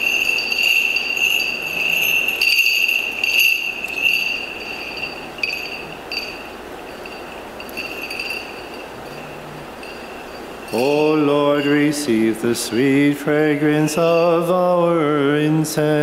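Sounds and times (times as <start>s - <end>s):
censer bells jingling: 0.0s - 15.1s.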